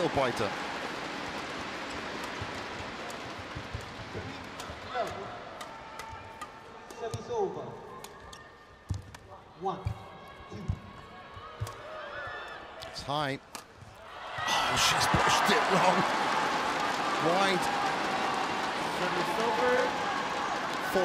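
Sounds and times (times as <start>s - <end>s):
crowd noise: 0.0s - 21.0s.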